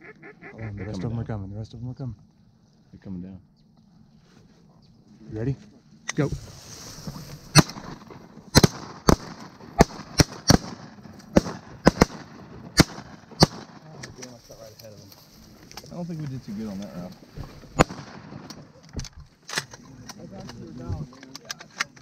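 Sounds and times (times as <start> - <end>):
shotguns firing: 7.5 - 14.0, 17.8 - 18.7.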